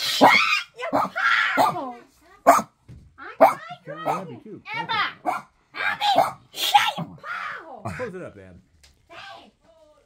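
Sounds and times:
dog barking: 0.2 - 2.8, 3.4 - 4.4, 5.2 - 7.0.

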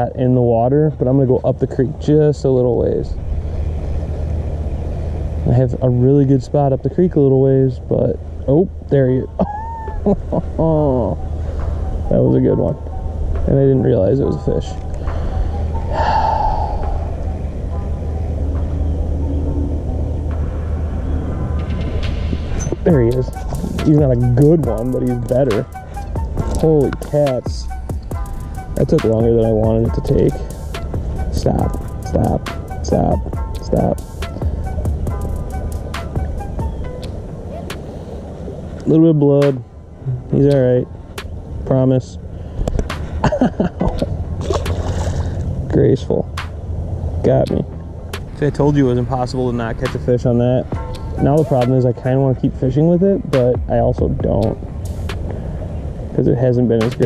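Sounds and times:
moving water: 0.7 - 57.0
wind on microphone: 8.1 - 57.0
fish splashing into water: 44.4 - 45.6.

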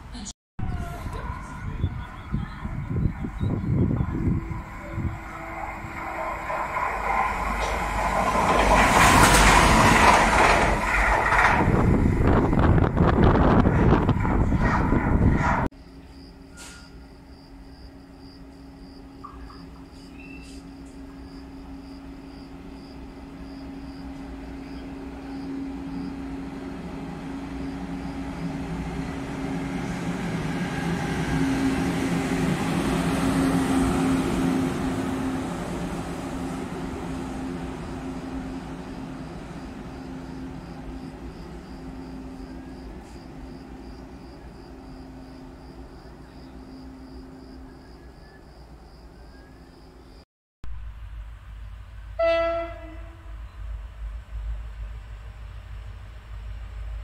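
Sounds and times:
train horn blast: 0.6 - 7.8, 52.1 - 53.5
locomotive engine passing: 0.6 - 50.0.

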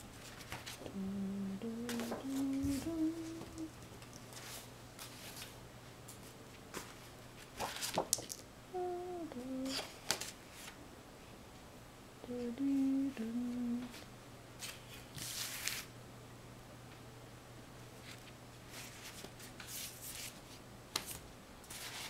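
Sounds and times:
person humming a tune: 0.8 - 3.8, 8.7 - 10.0, 12.2 - 14.0.

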